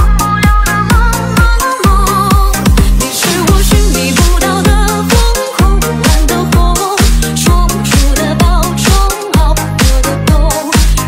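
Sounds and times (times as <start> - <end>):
house music with kick drum: 0.0 - 11.0.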